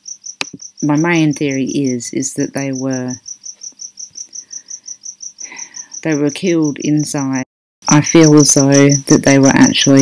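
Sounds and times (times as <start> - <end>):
high-pitched insect chirping: 0.0 - 10.0.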